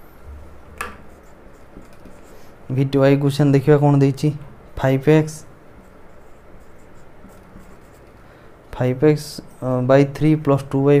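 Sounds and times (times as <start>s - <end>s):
marker writing on whiteboard: 0.8s - 2.5s, 5.8s - 8.2s.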